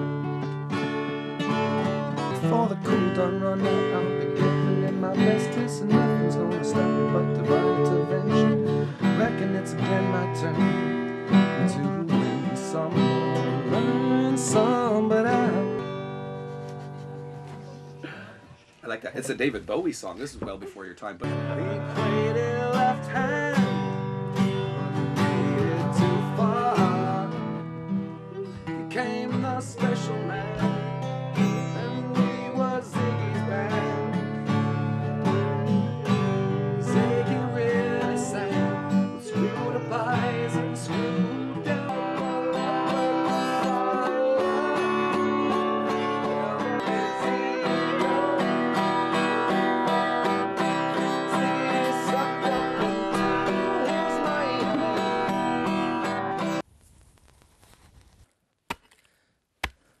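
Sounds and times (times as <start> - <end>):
acoustic guitar strumming: 0.0 - 56.7
person singing: 0.9 - 16.5, 21.2 - 24.1, 24.8 - 56.6.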